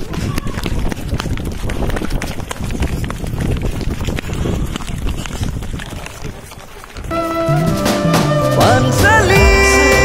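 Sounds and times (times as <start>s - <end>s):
footsteps running on pavement: 0.0s - 8.5s.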